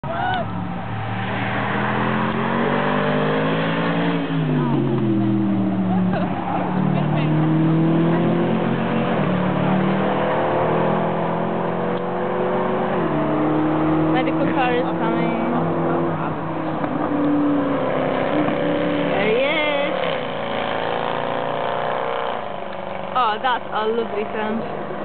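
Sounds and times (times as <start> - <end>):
race car accelerating through gears: 0.9 - 23.2.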